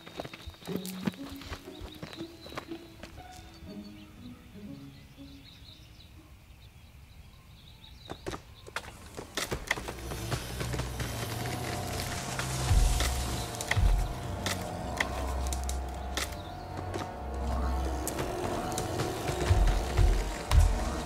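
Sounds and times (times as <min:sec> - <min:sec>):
sharp clicks and cracks: 0:08.2 - 0:21.0
tense film score drones: 0:08.8 - 0:21.0.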